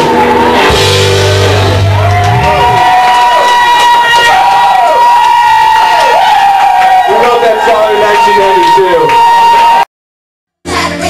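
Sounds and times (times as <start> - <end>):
crowd cheering: 0.0 - 9.9.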